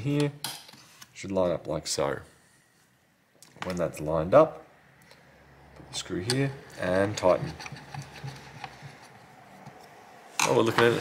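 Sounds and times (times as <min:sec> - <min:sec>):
screwdriver ticks and rubbing: 0:07.0 - 0:09.9.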